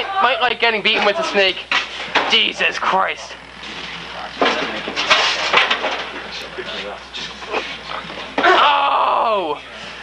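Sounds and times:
people shouting: 0.0s - 0.5s, 8.4s - 9.5s.

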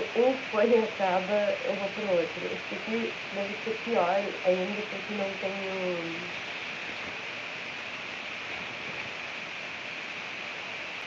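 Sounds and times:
microphone hiss: 0.0s - 11.0s.

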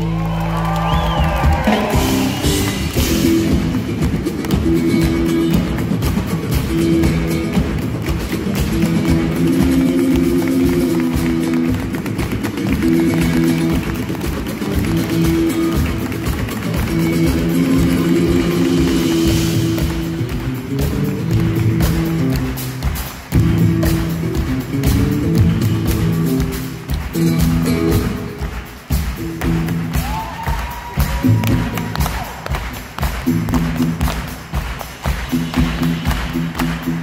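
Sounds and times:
drums and percussion: 0.0s - 37.0s
nylon-string guitar: 1.9s - 30.0s.

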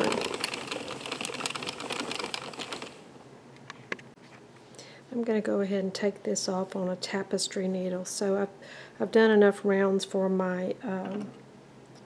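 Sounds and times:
hand crank turning: 0.0s - 3.0s
knitting machine carriage clattering: 0.0s - 3.0s.

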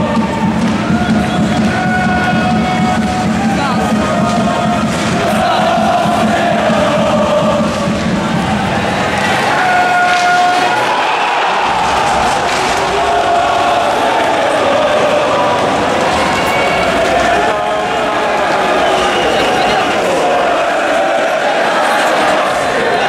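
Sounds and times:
crowd chanting and singing: 0.0s - 23.0s.

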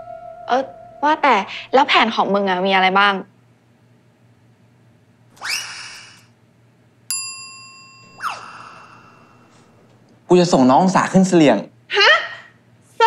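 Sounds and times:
bright bell-like ding: 7.1s - 9.8s.

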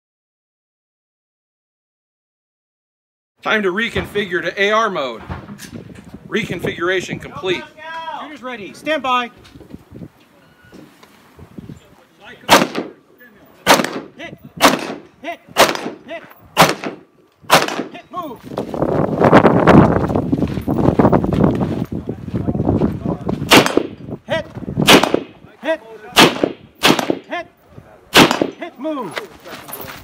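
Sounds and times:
rifle shots: 12.5s - 13.0s, 13.6s - 18.0s, 23.5s - 24.0s, 24.8s - 25.4s, 26.2s - 27.3s, 28.1s - 28.6s.

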